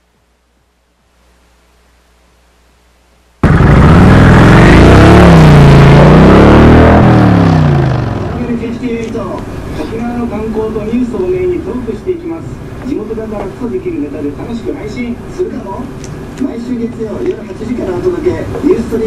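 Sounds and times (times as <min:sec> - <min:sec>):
car engine revving: 0:03.4 - 0:08.8.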